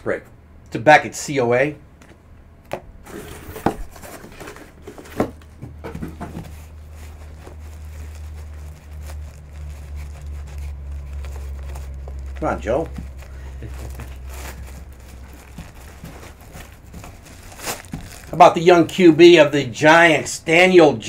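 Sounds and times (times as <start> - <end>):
low steady hum: 0.0 - 21.0
bag rustling and crinkling: 3.0 - 19.1
sharp handling knocks: 3.5 - 7.6.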